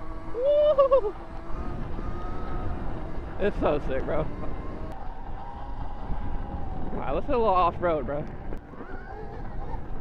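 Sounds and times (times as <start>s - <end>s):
faint electric motor whine: 0.0s - 10.0s
wind buffeting microphone: 0.0s - 10.0s.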